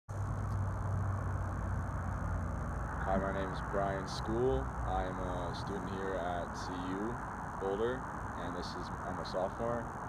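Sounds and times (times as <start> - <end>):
low outdoor rumble: 0.1 - 10.0.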